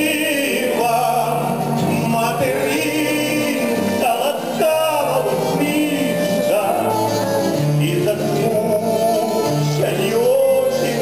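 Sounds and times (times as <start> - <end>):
accordion: 0.0 - 11.0
acoustic guitars playing chords: 0.0 - 11.0
voices singing: 0.0 - 11.0.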